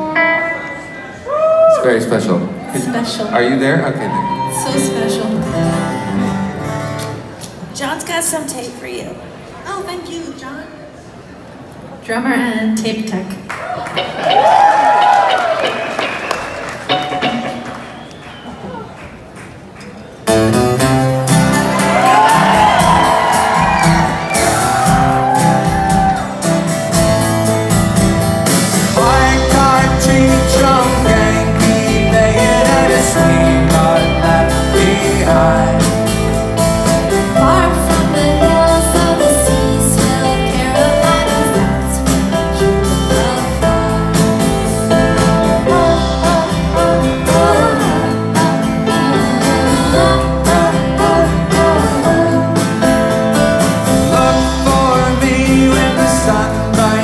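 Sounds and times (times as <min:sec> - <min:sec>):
drums: 0:13.6 - 0:57.0
electric guitar: 0:13.8 - 0:18.8, 0:20.3 - 0:57.0
bass guitar: 0:20.3 - 0:57.0
strummed acoustic guitar: 0:20.3 - 0:57.0
person singing: 0:28.8 - 0:57.0.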